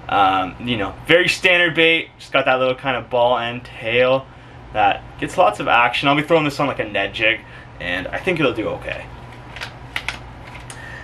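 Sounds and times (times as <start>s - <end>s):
steady low hum: 0.0s - 11.0s
plastic packaging clicks and taps: 9.6s - 10.8s.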